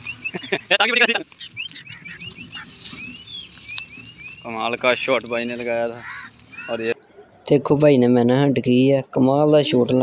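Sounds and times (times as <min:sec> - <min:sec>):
bird chirps gliding upward: 0:00.0 - 0:05.6.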